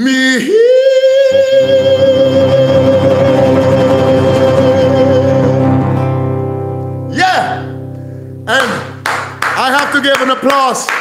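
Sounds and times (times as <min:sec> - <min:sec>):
acoustic guitar chord ringing: 0:01.6 - 0:09.6
man crying out swooping pitch: 0:07.1 - 0:07.8.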